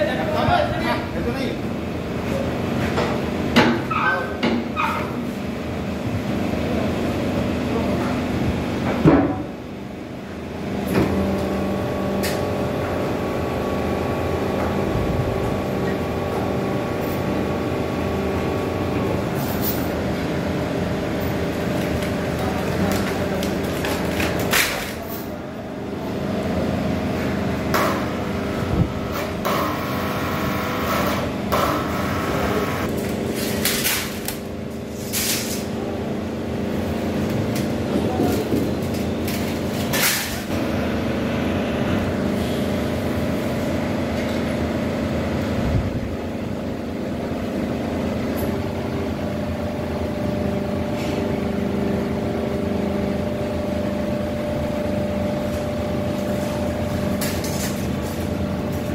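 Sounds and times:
scrap press motor humming: 27.2s - 33.6s.

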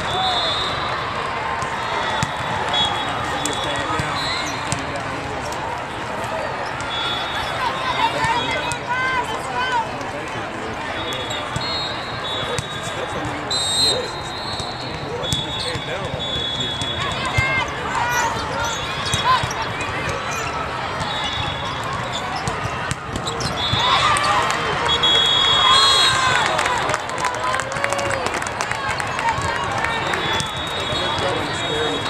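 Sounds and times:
high whistle tones: 0.0s - 0.8s, 13.5s - 17.2s, 24.8s - 26.3s, 30.1s - 32.0s
crowd chatter in a hall: 0.0s - 32.0s
sneakers squeaking: 1.6s - 5.0s, 6.3s - 8.8s, 10.2s - 26.3s, 29.5s - 32.0s.

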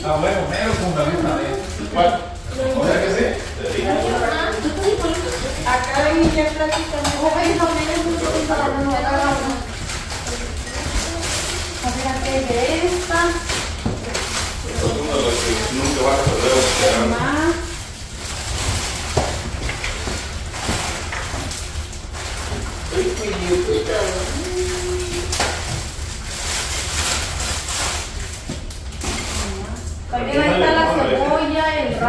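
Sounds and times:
indistinct chatter: 0.0s - 21.1s, 22.8s - 28.3s, 29.0s - 32.0s
steady low hum: 0.0s - 32.0s.

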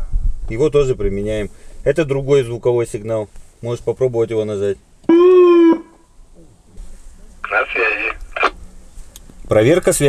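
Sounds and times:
police siren tone burst: 5.1s - 6.0s.

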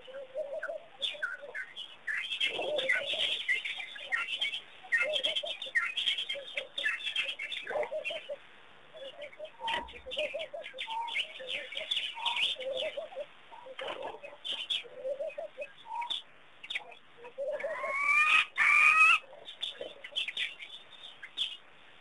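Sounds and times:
birds chirping and calling: 0.0s - 21.7s
loud rising bird calls: 17.5s - 19.3s.

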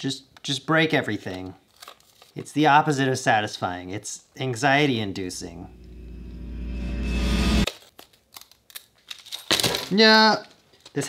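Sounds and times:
buzzy synth tone: 5.2s - 7.7s.

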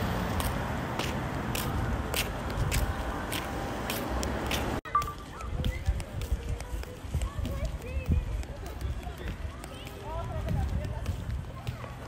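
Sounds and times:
wind rumble on microphone: 5.4s - 12.0s.

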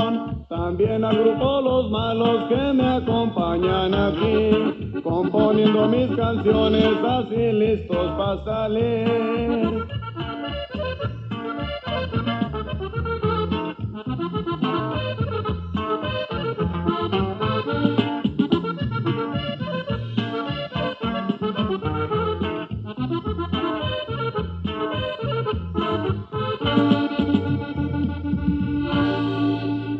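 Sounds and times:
accordion melody: 0.0s - 29.9s
bass line: 0.0s - 29.9s
steady beat: 0.0s - 29.9s.

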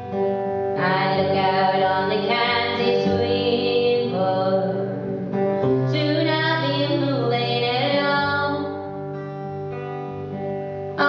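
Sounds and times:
acoustic guitar: 0.0s - 11.0s
woman singing folk song: 0.7s - 9.2s.

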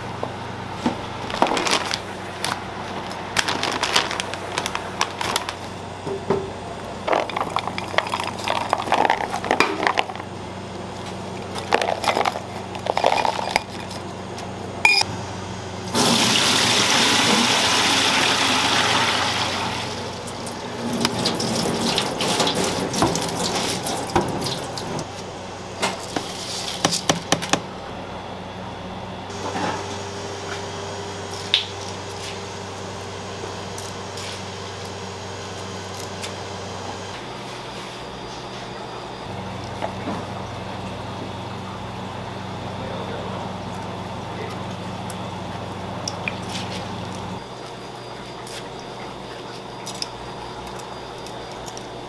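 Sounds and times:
steady hum: 0.0s - 52.0s
water running hard: 15.9s - 25.0s.

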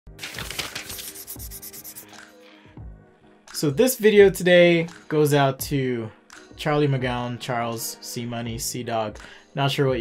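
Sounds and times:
rapid scratching strokes: 0.5s - 2.2s.

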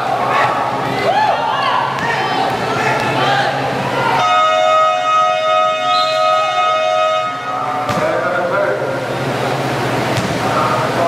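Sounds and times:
scoreboard buzzer tone: 4.2s - 7.6s.

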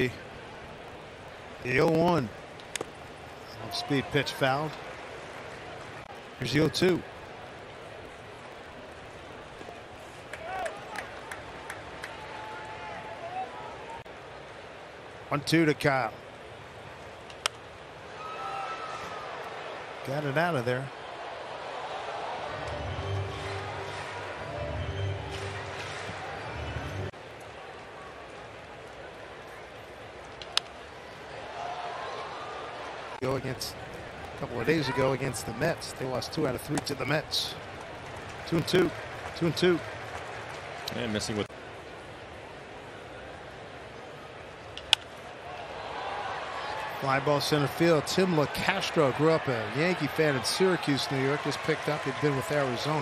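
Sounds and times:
ballpark crowd: 0.0s - 53.0s
stadium music over loudspeakers: 22.5s - 27.1s.

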